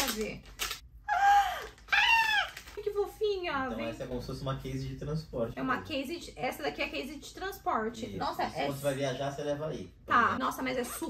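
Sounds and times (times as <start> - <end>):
woman squealing excitedly: 1.1 - 2.7.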